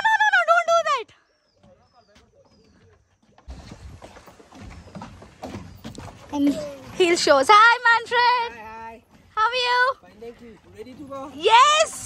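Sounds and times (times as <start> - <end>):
faint bird calls: 1.0 - 3.8.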